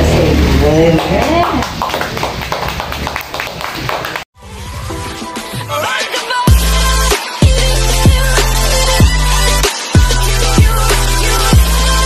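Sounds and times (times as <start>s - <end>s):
people clapping: 0.9s - 4.3s.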